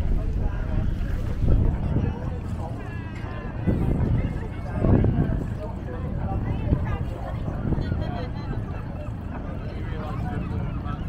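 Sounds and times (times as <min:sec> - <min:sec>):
people talking: 0:00.0 - 0:11.0
wind buffeting microphone: 0:00.0 - 0:11.0.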